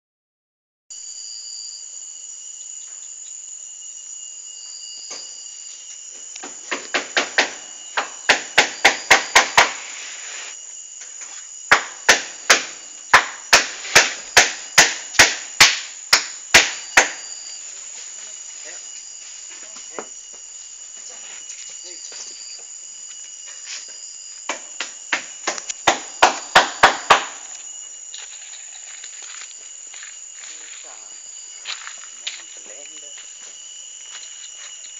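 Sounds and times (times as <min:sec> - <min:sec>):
insects chirping: 0:00.9 - 0:34.9.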